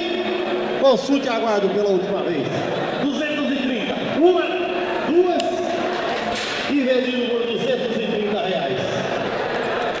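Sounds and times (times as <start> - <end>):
auctioneer calling bids: 0.0 - 9.2
crowd chatter: 0.0 - 10.0.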